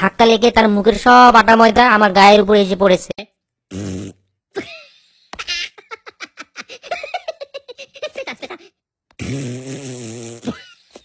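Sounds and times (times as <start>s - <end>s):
cartoon buzzing noise: 3.7s - 4.3s, 9.2s - 10.6s.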